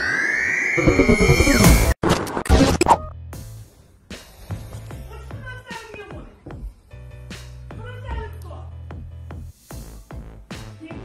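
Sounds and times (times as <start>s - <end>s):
electronic intro sting: 0.0s - 2.0s
scratch sound effect: 0.8s - 3.0s.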